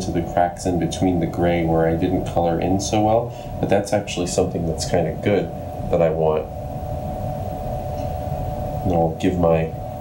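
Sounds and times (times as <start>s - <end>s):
fan humming: 0.0s - 10.0s.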